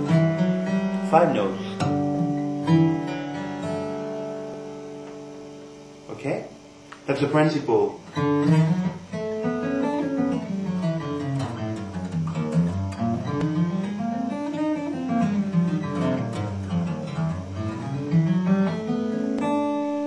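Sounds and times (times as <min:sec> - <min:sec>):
fingerstyle acoustic guitar: 0:00.0 - 0:05.9, 0:07.9 - 0:20.0.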